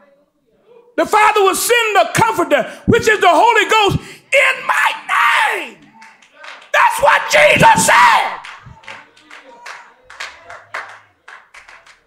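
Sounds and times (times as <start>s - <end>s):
scattered hand claps: 5.8s - 7.0s, 7.6s - 12.0s.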